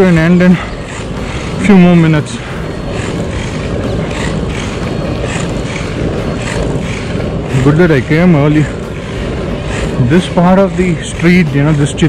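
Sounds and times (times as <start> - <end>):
longboard rolling on asphalt: 0.0 - 12.0
wind on microphone: 0.0 - 12.0.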